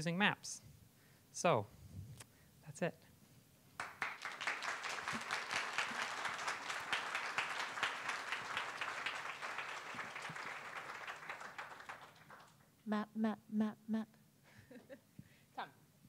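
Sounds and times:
audience applauding: 3.8 - 12.7.

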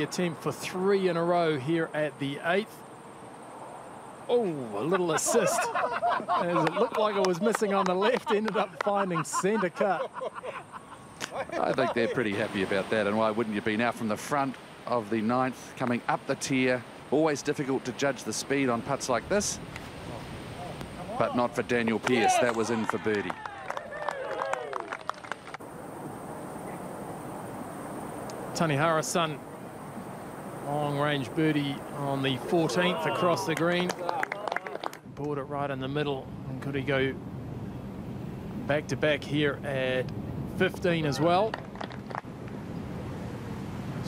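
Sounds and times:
outdoor background hiss: 0.0 - 44.0
crowd clapping and calling: 6.5 - 9.1, 21.9 - 25.6, 32.7 - 35.4, 41.3 - 42.3.

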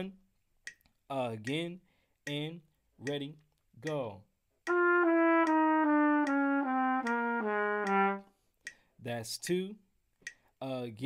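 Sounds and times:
solo trumpet descending line: 4.7 - 8.3.

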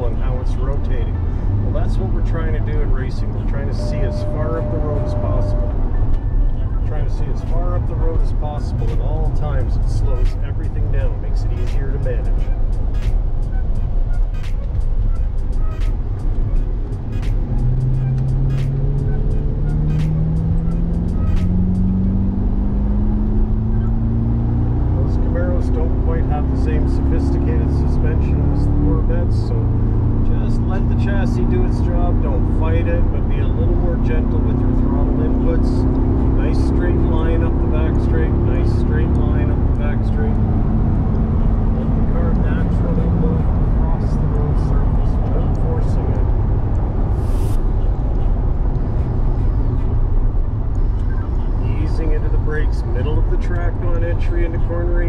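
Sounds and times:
car engine accelerating: 0.0 - 55.0
background music: 1.1 - 28.0.

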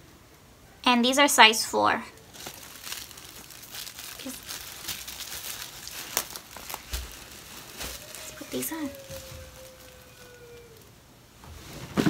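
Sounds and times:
wrapping crinkling: 2.2 - 10.9.

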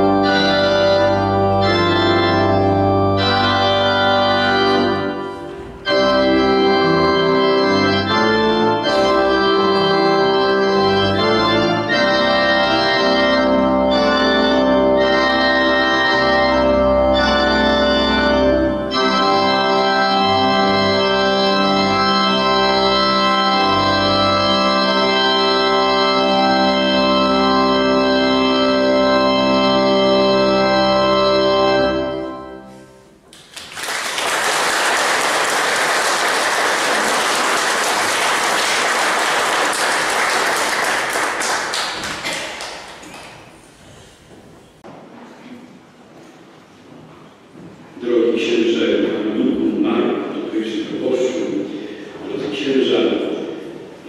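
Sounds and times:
organ playing: 0.0 - 43.1
audience applauding: 33.3 - 43.6.

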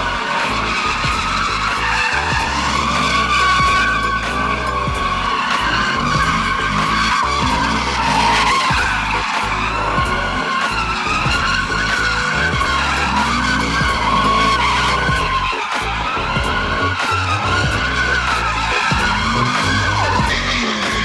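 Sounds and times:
music with bass beat: 0.0 - 21.0
tyres squealing: 0.0 - 21.0.

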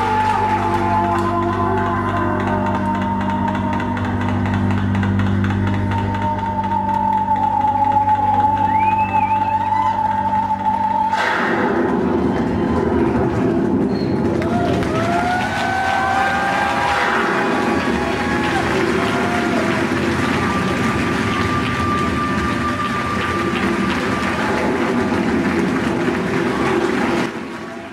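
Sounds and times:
audience applauding and cheering: 0.0 - 27.9
long whoops: 5.9 - 11.2, 14.4 - 24.9.

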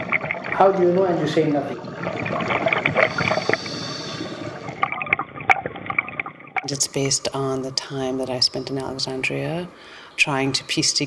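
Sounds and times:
water gurgling and bubbling: 0.0 - 9.2.

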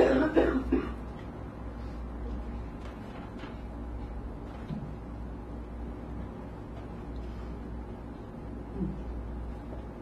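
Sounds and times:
person coughing: 0.0 - 1.1.

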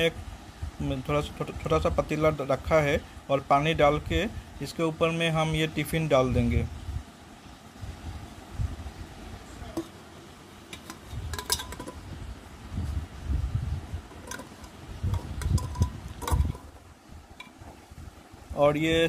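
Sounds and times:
steel container clinking on metal: 10.7 - 12.1, 14.1 - 16.8.

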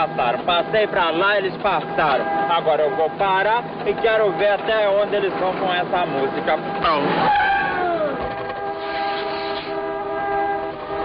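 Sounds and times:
car horns honking: 0.0 - 11.0.

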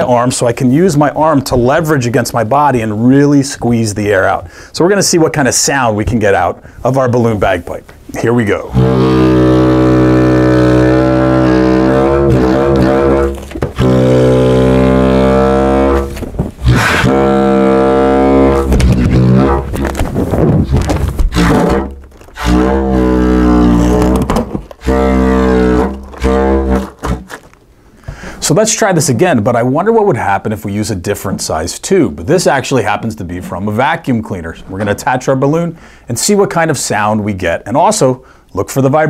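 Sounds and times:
balloon bagpipe buzzy drone: 8.7 - 27.5.

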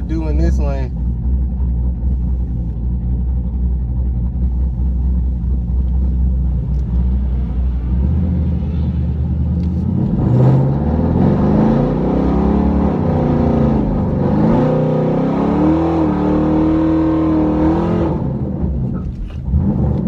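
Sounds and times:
car engine revving: 0.0 - 20.0.

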